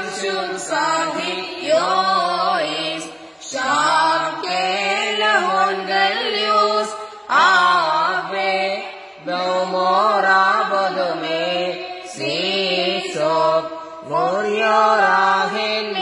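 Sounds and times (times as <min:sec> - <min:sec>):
boys chanting a hymn: 0:00.0 - 0:16.0.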